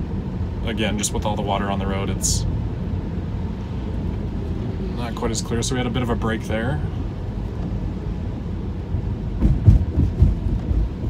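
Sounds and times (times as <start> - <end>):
tyre and road rumble: 0.0 - 11.0
heavy low thumps: 8.9 - 11.0.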